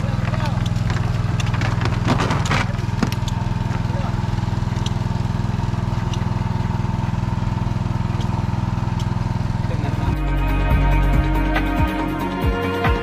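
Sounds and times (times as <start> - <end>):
small engine droning: 0.0 - 13.0
background music: 10.0 - 13.0.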